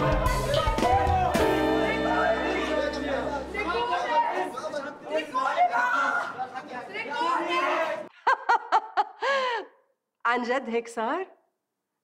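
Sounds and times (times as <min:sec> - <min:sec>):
background music: 0:00.0 - 0:04.5
men's overlapping voices: 0:01.1 - 0:08.1.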